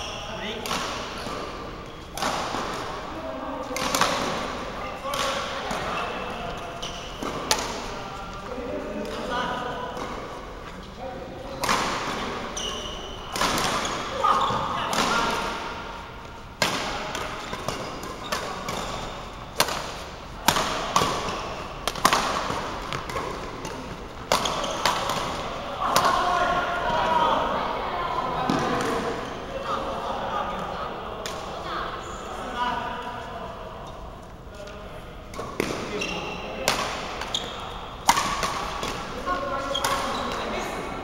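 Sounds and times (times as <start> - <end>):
court shoes squeaking: 0.0 - 3.0, 3.6 - 25.6, 33.8 - 40.8
rackets striking shuttlecock: 16.6 - 26.1, 36.6 - 39.1.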